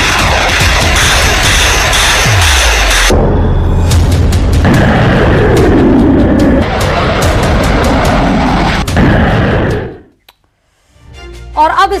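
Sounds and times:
dramatic music with fast beat: 0.0s - 10.0s
heavy low rumble: 0.0s - 10.1s.

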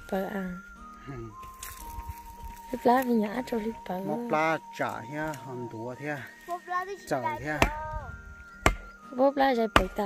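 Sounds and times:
hand tool striking hard earth: 7.4s - 9.0s, 9.7s - 10.0s.

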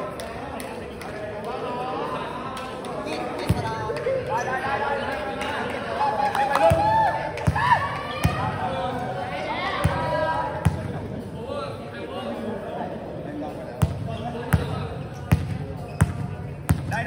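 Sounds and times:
players' voices: 0.0s - 17.0s.

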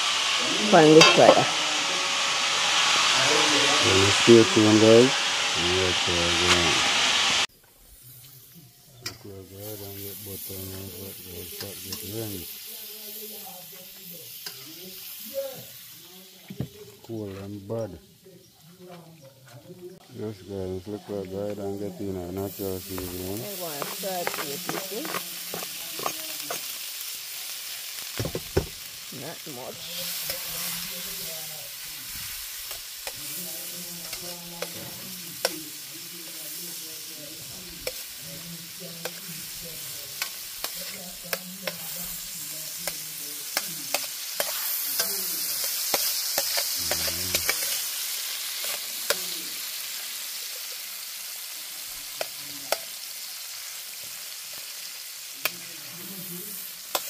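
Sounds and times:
onions sizzling in a frying pan: 0.0s - 18.6s, 20.0s - 57.0s
metal spoon scraping a pan: 0.2s - 3.2s, 9.0s - 12.6s, 22.5s - 26.9s, 29.8s - 36.8s, 37.6s - 49.9s, 56.6s - 57.0s.

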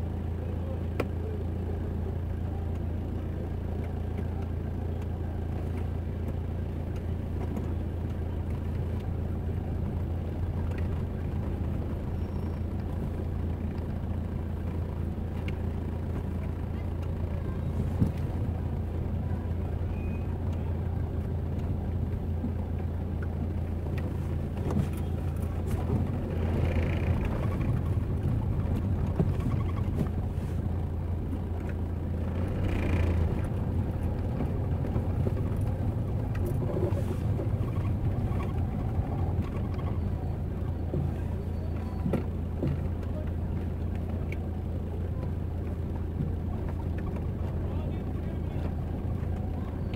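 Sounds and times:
car traffic: 0.0s - 49.9s
steady low rumble: 0.0s - 49.9s
voices of passers-by: 0.0s - 49.9s.

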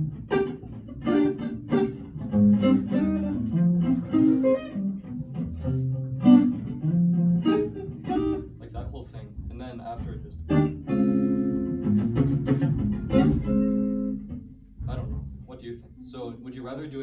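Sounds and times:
guitar plucking single notes: 0.0s - 15.9s.

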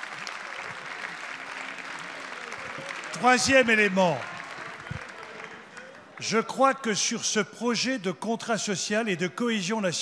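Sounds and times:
scattered applause: 0.0s - 6.8s.

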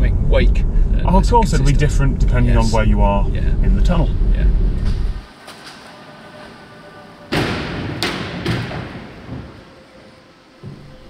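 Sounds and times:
loud thud: 7.3s - 9.7s
sharp knocks: 7.3s - 9.9s.

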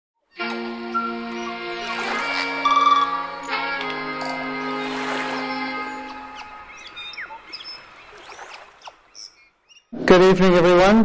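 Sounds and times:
birds chirping: 0.3s - 10.1s
intro music: 0.4s - 7.5s.

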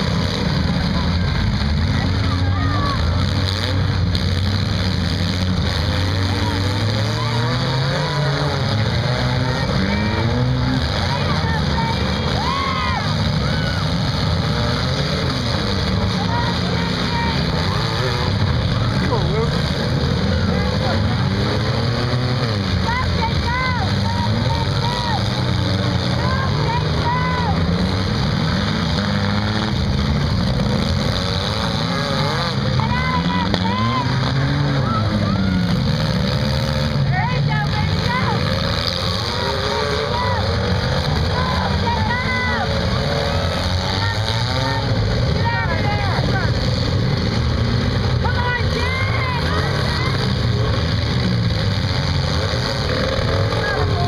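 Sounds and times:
car engines revving: 0.0s - 54.0s
voices in background: 0.0s - 54.0s.

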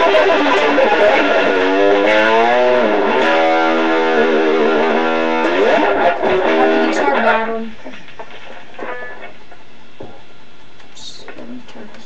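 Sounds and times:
blues-rock guitar solo: 0.0s - 10.2s.

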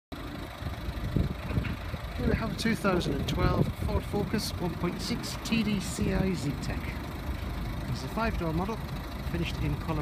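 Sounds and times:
diesel engine idling: 0.1s - 10.0s.

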